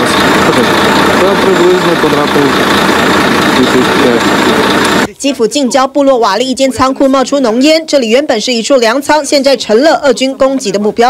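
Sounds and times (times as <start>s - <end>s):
fire engines running: 0.0s - 5.1s
person talking: 3.6s - 4.2s.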